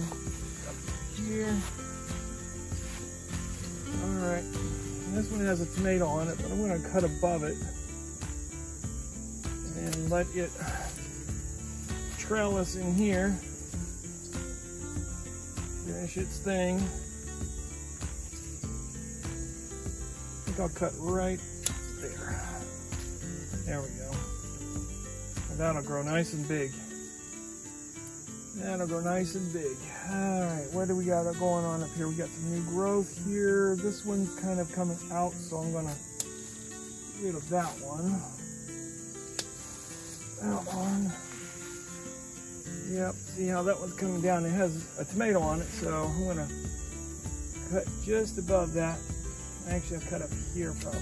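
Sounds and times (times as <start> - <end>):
crickets chirping: 0.0 - 51.0
insect chorus: 0.0 - 51.0
soft background music: 0.0 - 51.0
faint clicks of pruning vines: 9.6 - 13.5, 21.4 - 22.2, 35.7 - 38.3, 39.1 - 42.0, 50.6 - 51.0
sharp click: 39.3 - 39.5.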